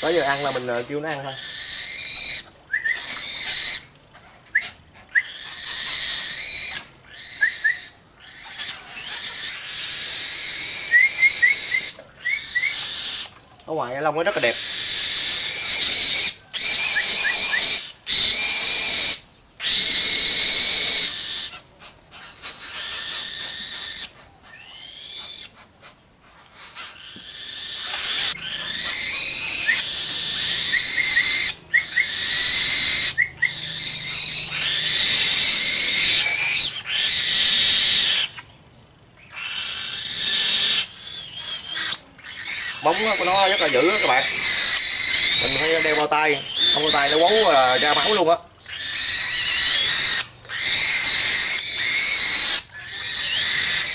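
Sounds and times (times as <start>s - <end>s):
young bird of prey screeching: 0.0s - 38.5s, 39.2s - 53.9s.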